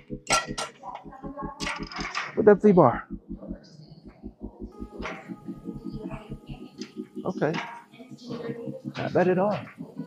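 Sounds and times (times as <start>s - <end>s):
metal handle clanking: 0.3s - 0.8s.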